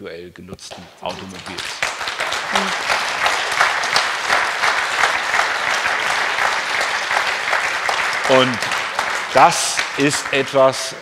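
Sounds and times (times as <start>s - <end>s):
audience clapping: 0.7s - 11.0s.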